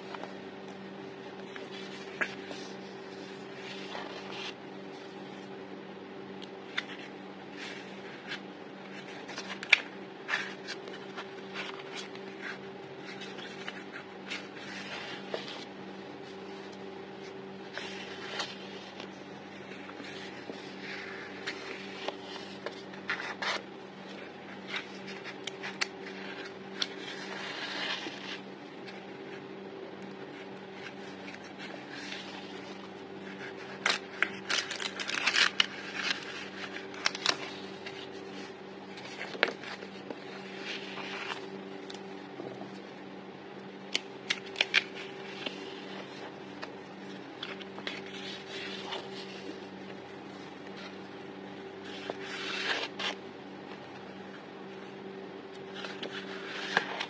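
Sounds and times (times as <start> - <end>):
low electrical hum: 0.0 - 57.0
paper sheets rustling: 1.4 - 5.6, 6.6 - 29.4, 30.2 - 42.9, 43.9 - 54.2, 55.6 - 57.0.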